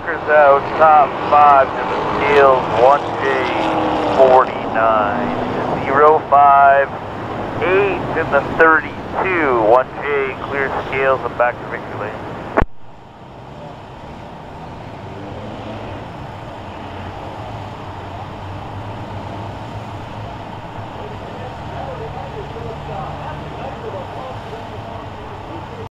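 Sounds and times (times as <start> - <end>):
car engines low rumble: 0.0 - 25.9.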